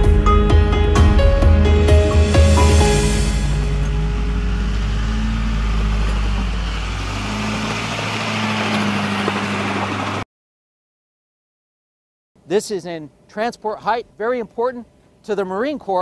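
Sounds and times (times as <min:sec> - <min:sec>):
music: 0:00.0 - 0:04.6
diesel engine running under load: 0:01.9 - 0:10.2.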